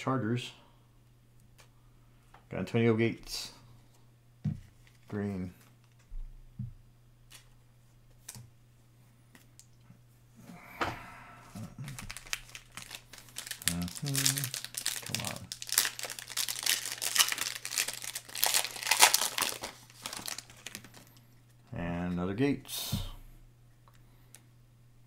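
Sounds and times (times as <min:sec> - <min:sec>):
foil wrapper tearing and crinkling: 0:11.8 - 0:21.1.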